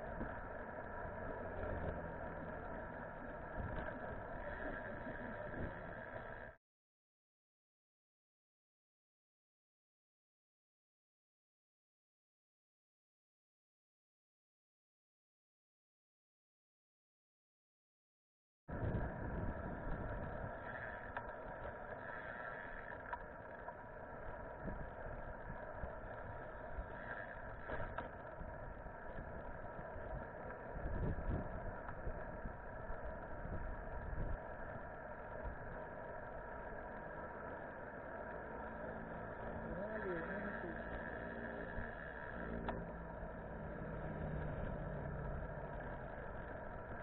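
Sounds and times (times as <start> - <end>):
faint steady hum: 0.0 - 6.6, 18.7 - 47.0
wind buffeting: 18.7 - 21.8, 24.2 - 37.0
tyre on road rumble: 18.8 - 47.0.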